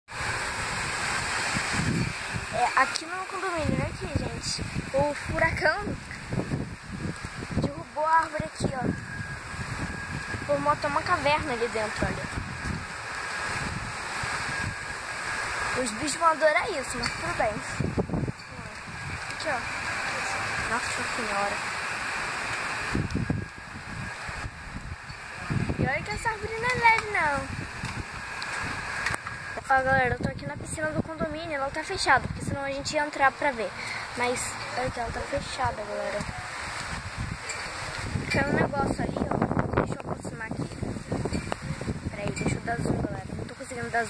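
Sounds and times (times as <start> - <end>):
wind buffeting microphone: 0.1 - 44.0
wind rushing: 0.1 - 44.0.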